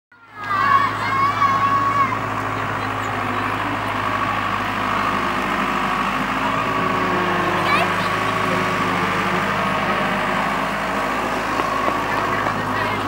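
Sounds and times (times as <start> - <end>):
children calling out: 0.2 - 13.0.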